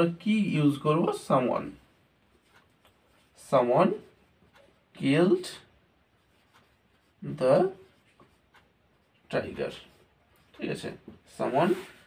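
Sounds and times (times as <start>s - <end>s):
marker pen writing on whiteboard: 0.0s - 12.0s.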